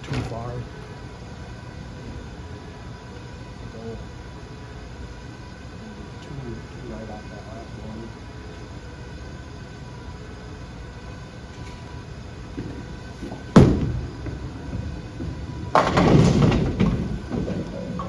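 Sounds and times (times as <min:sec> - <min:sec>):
bowling balls rolling: 0:12.4 - 0:18.0
bowling ball thudding on lane: 0:13.5 - 0:17.7.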